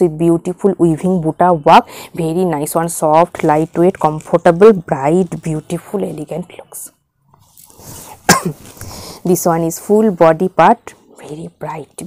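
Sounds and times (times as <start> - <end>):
fabric rustling: 7.4 - 9.8
woman coughing: 8.2 - 8.7.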